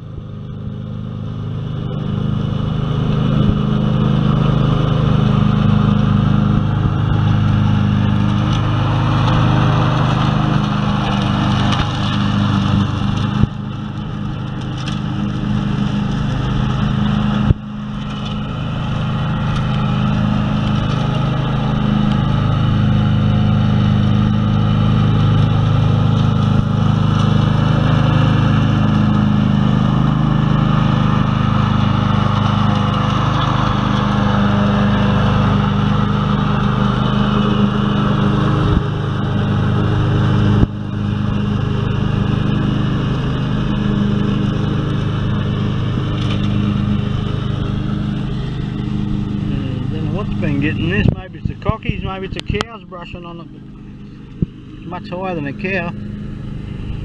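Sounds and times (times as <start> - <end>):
lawn mower engine running: 0.0 - 57.0
mower deck whir: 0.0 - 57.0.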